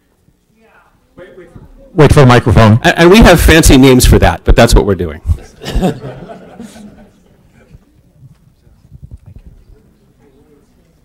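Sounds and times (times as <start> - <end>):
microphone handling thumps: 7.7 - 9.8.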